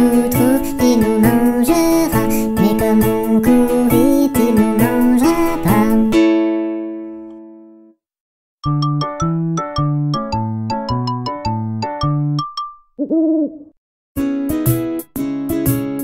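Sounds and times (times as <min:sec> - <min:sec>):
cartoon owl hoot: 0:13.0 - 0:13.8.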